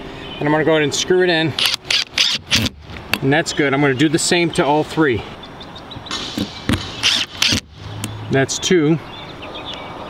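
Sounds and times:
cordless drill driving screw: 1.6s - 2.8s, 6.4s - 7.7s.

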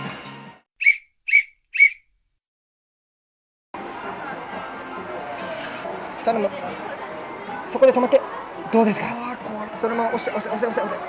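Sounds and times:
high whistle-like chirps: 0.8s - 2.1s.

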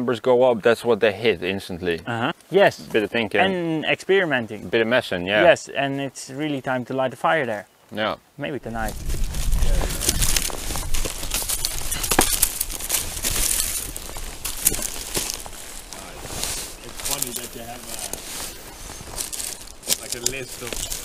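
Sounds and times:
dry reeds rustling and crackling: 8.6s - 21.0s.

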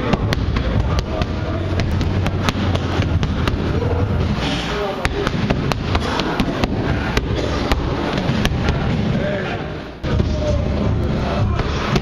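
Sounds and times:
boxing gloves hitting focus mitts: 0.0s - 4.4s, 5.0s - 9.2s.

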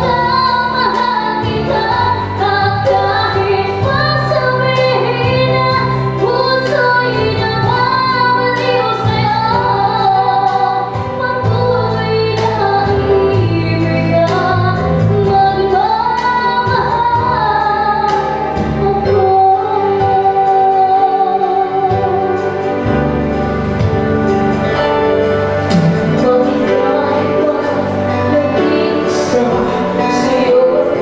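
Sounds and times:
girl singing into a microphone: 0.0s - 22.7s, 26.0s - 31.0s
instrumental accompaniment with beat: 0.0s - 31.0s.

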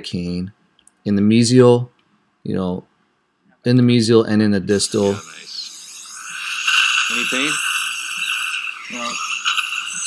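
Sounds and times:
saliva ejector hissing: 4.7s - 10.0s
person speaking: 6.9s - 7.8s, 8.8s - 9.8s.

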